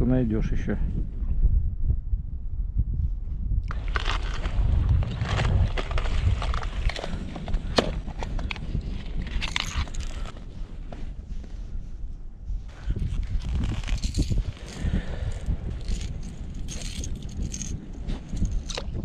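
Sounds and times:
wind rumbling on microphone: 0.0s - 19.0s
rustling and clicks of handled gear: 3.6s - 11.6s, 12.7s - 19.0s.

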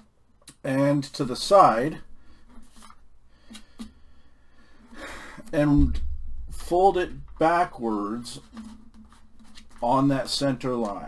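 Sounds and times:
paper rustling and sliding: 2.4s - 3.6s, 7.2s - 10.9s.

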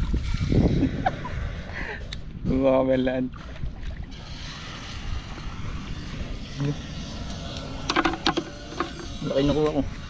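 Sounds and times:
wind rumble on microphone: 0.0s - 10.0s.

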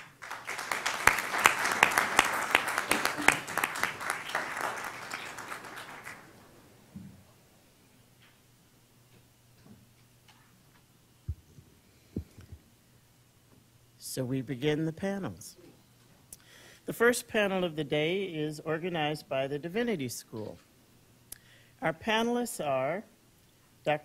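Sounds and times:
audience applauding: 0.0s - 6.6s.

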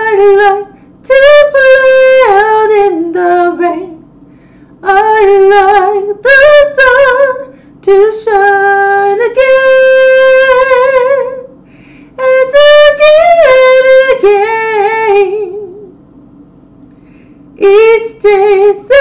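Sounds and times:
woman singing unaccompanied: 0.0s - 4.1s, 4.8s - 11.5s, 12.2s - 16.0s, 17.6s - 19.0s.

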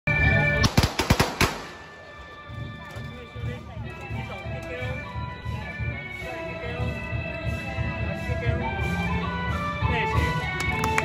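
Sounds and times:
firecracker bangs: 0.6s - 1.9s
music with low beat and melody: 2.0s - 11.0s.

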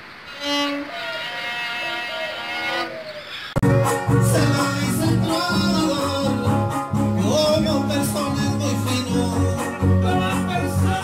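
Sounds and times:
solo violin sustained notes: 0.2s - 8.0s.

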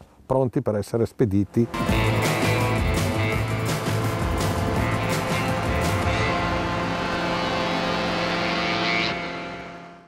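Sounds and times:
hovercraft engine humming: 1.8s - 10.0s.

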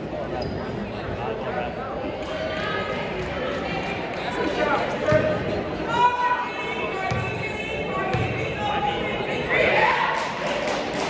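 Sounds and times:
murmur of crowd voices echoing: 0.0s - 11.0s.

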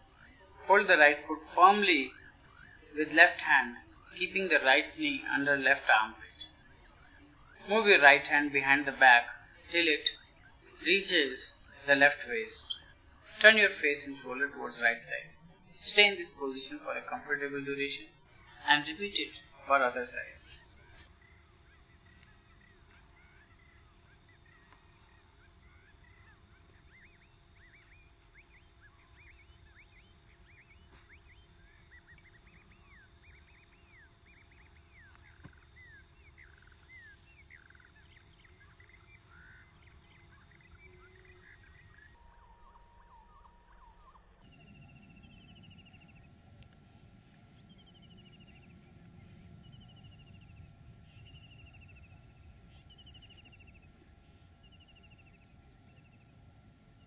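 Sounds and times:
birds chirping: 0.0s - 57.0s
low steady rumble: 44.2s - 57.0s.

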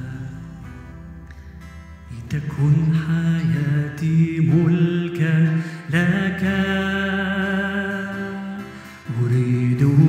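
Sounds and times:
man singing into a microphone: 0.0s - 0.9s, 2.1s - 10.0s
acoustic guitar: 0.0s - 10.0s
short breath: 5.5s - 5.9s, 8.6s - 9.0s.

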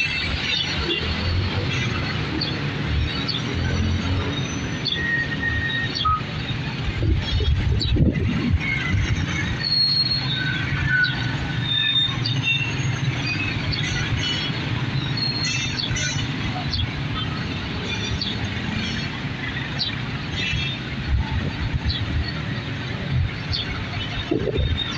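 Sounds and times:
traffic engines rumbling: 0.0s - 24.9s.

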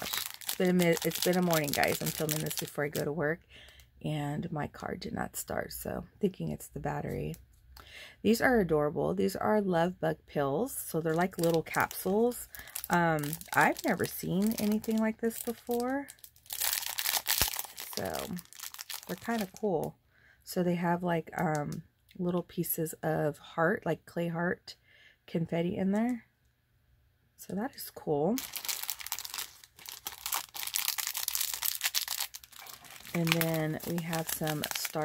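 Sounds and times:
plastic bag crinkling: 0.0s - 3.1s, 11.1s - 19.6s, 28.4s - 35.0s.

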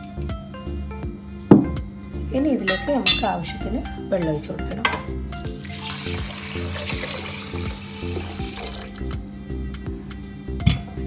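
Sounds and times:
water pouring and splashing: 5.4s - 9.3s.

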